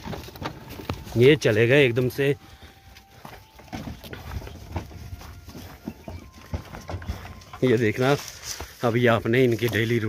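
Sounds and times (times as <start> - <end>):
hooves on stony ground: 0.0 - 10.0.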